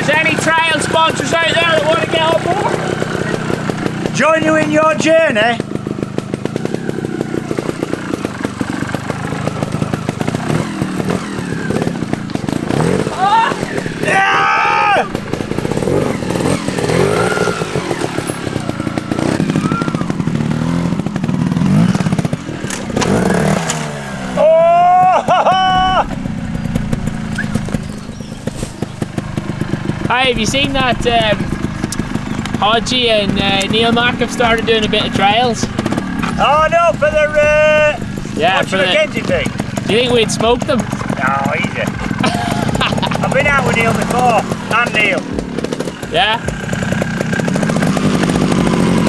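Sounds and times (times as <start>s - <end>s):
motorcycle engine revving: 0.0s - 49.0s.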